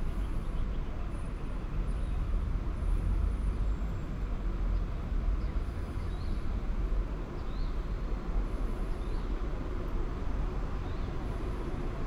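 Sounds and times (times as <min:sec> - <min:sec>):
distant road traffic rumble: 0:00.0 - 0:12.0.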